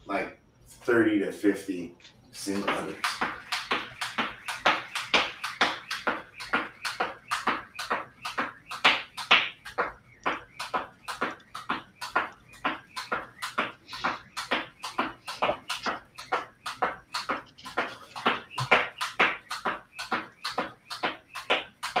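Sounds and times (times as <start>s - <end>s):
jump rope slapping floor mat: 2.5s - 22.0s
feet landing: 2.7s - 22.0s.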